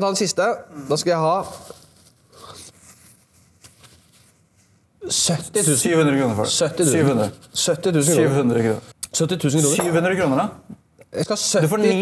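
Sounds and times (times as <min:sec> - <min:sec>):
paper tissue rustling: 0:01.3 - 0:04.9.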